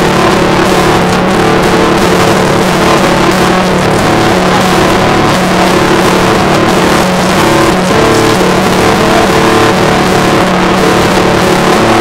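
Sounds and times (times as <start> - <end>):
distorted acoustic guitar strumming: 0.0 - 12.0.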